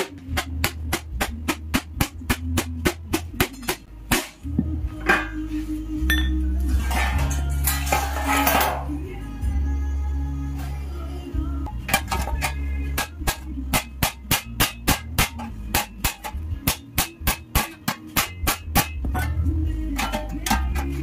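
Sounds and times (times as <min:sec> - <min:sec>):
background music with bass line: 0:00.0 - 0:21.0.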